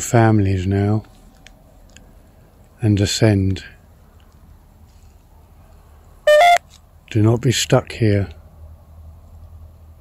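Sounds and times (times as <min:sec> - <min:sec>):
two-tone electronic beep: 0:06.3 - 0:06.6.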